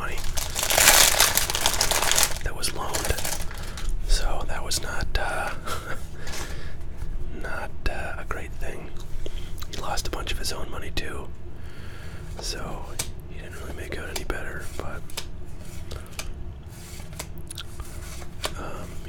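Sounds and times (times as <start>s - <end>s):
person whispering: 0.0s - 0.4s, 2.3s - 3.4s, 4.1s - 5.6s, 7.4s - 9.0s, 9.7s - 11.3s, 12.4s - 15.0s
cards being flipped: 15.1s - 18.5s.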